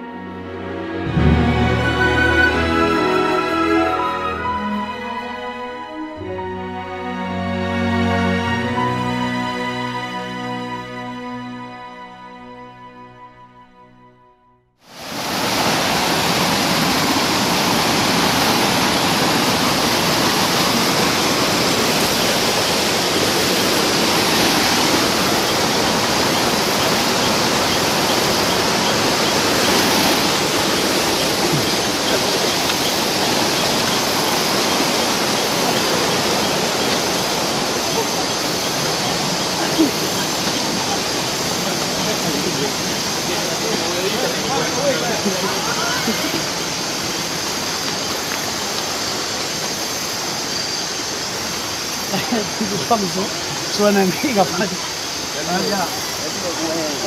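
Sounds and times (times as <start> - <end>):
loud steady rushing noise: 14.8 - 57.0.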